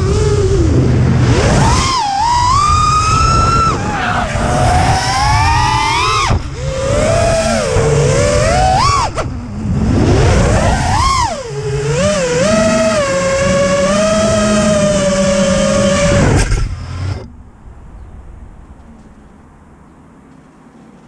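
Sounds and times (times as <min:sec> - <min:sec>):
drone motors and propellers whining: 0:00.0 - 0:20.7.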